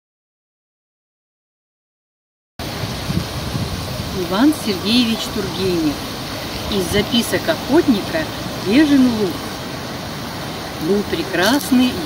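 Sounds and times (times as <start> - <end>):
fountain running: 2.6 - 12.0.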